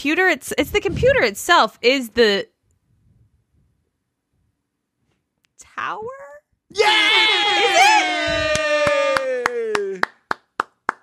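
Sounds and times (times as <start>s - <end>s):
cheering voice: 6.7s - 10.0s
person clapping hands: 8.3s - 11.0s.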